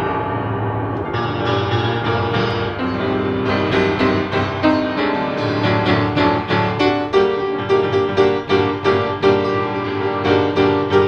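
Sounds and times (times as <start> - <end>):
upright piano chords: 0.0 - 11.0.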